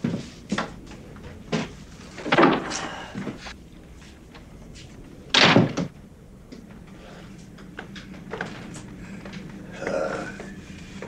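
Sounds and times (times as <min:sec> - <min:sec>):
door slamming shut: 0:05.3 - 0:05.9
door rattle: 0:05.3 - 0:06.0.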